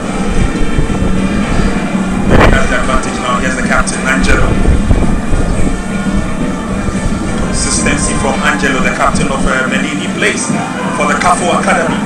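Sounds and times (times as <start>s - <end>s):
low rumble: 0.0s - 10.6s
stadium crowd noise: 0.0s - 12.0s
steady hum: 0.0s - 12.0s.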